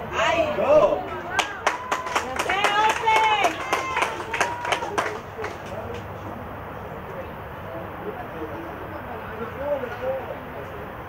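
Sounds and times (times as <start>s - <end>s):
people clapping: 1.0s - 6.1s
high-pitched shouts: 2.6s - 4.7s.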